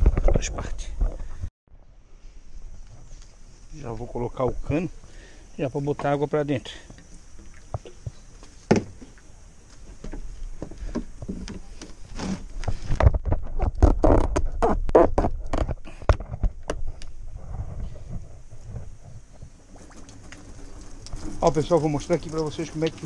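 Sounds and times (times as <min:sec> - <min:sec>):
faint steady hiss: 0:02.1 - 0:12.8
hose and pipe knocking and scraping: 0:09.8 - 0:23.0.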